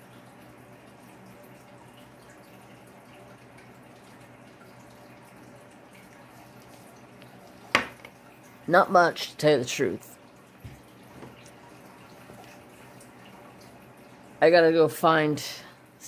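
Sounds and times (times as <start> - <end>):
pen knocking on wooden desk: 7.7 - 8.1.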